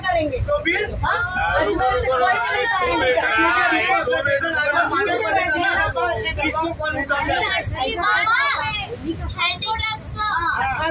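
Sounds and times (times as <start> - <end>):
child's voice: 7.8 - 10.9.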